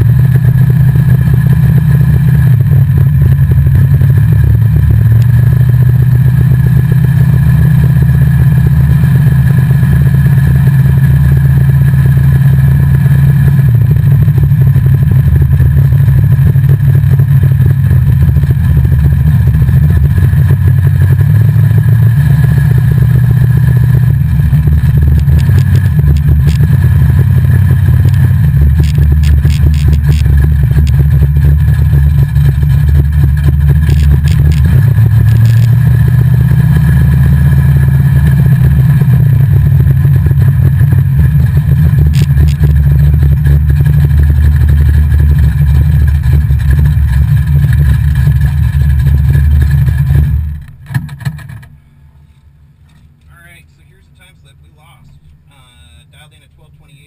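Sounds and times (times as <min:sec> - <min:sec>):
car engine drone: 0:00.0 - 0:57.0.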